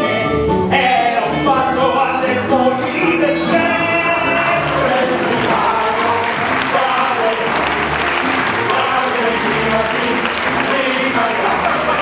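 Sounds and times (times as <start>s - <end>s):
music: 0.0s - 12.0s
audience applauding: 4.4s - 12.0s.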